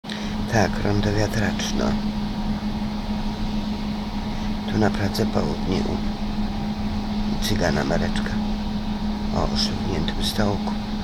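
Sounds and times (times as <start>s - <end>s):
low hum: 0.0s - 11.0s
tram interior rush: 0.1s - 11.0s.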